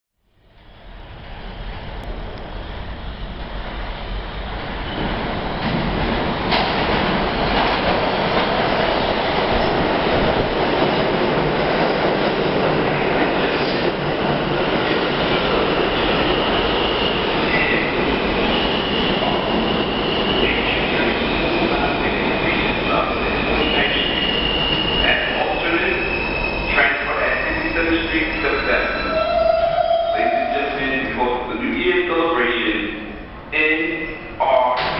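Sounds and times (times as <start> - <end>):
subway train rumble: 0.2 - 34.9
train cars running din: 1.0 - 32.3.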